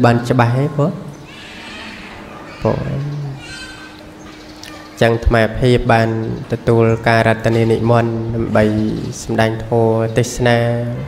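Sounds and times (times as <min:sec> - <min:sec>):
man preaching: 0:00.0 - 0:01.1, 0:02.6 - 0:03.7, 0:05.0 - 0:11.0
low steady hum: 0:00.0 - 0:11.0.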